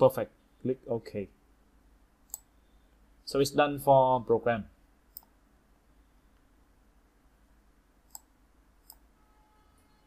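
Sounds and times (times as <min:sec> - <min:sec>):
computer mouse clicks: 0:02.2 - 0:02.5, 0:05.1 - 0:05.4, 0:08.0 - 0:09.1.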